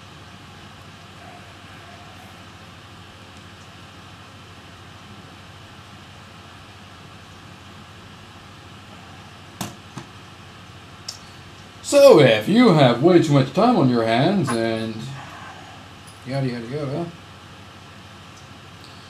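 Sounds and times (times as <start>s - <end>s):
low room hiss: 0.0s - 19.0s.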